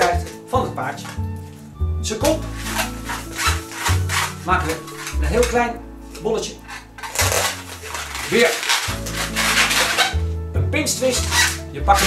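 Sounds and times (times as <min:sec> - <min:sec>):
background music with bass line: 0:00.0 - 0:12.0
balloon rubbing: 0:02.2 - 0:10.4, 0:11.0 - 0:12.0.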